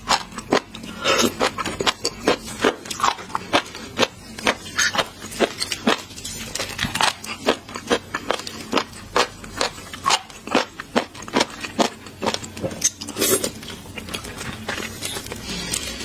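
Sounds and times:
wet chewing and mouth clicks: 0.0s - 16.0s.

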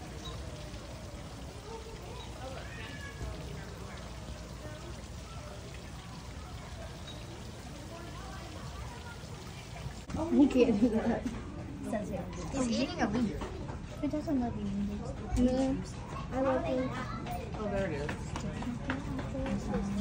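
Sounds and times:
distant chatter of people: 0.0s - 20.0s
water trickling over rocks: 0.0s - 20.0s.

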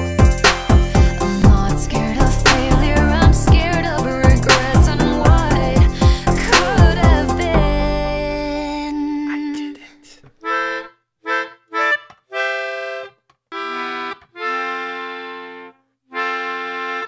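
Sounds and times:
melodica playing single notes: 0.0s - 8.1s, 10.4s - 17.0s.

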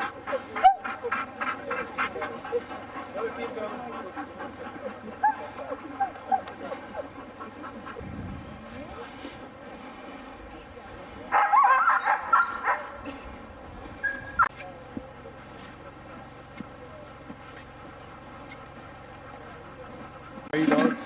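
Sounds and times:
dogs yelping excitedly: 0.0s - 8.0s, 11.3s - 13.2s, 13.9s - 14.5s
dogs yipping and whining: 0.0s - 8.0s, 11.4s - 14.5s.

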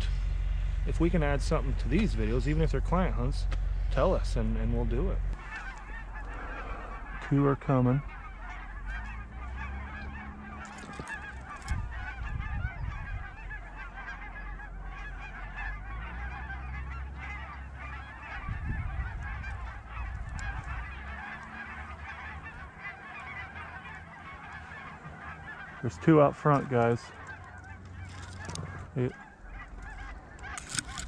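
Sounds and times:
geese honking: 0.0s - 31.0s
low rumble: 0.0s - 31.0s.

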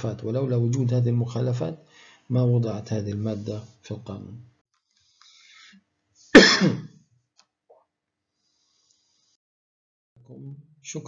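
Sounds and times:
man coughing: 6.4s - 7.0s.

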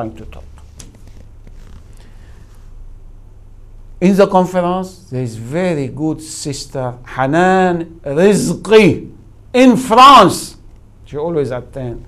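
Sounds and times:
faint background hiss: 0.0s - 12.0s
steady low hum: 0.0s - 12.0s.

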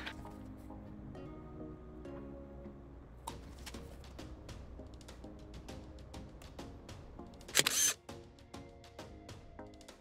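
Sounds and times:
music with steady beat: 3.3s - 10.0s
camera shutter sound effect: 7.5s - 8.0s.

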